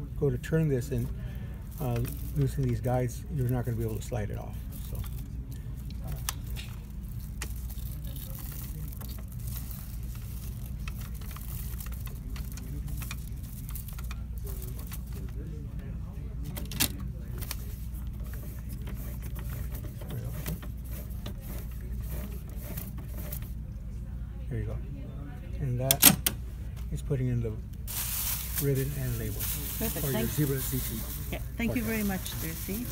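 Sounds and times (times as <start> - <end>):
steady low hum: 0.0 - 32.9.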